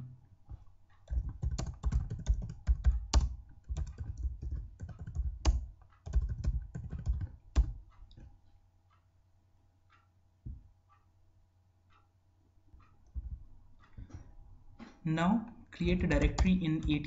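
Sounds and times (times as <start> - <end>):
typing on computer keyboard: 1.0 - 8.3, 15.8 - 17.0.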